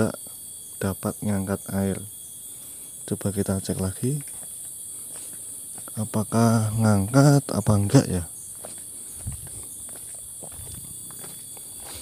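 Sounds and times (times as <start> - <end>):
high-pitched insect chorus: 0.0 - 12.0
footsteps on dirt and gravel: 3.7 - 6.1, 8.1 - 12.0.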